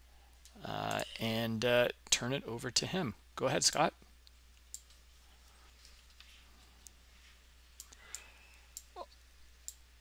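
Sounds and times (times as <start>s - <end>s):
faint clicks: 7.8s - 9.0s.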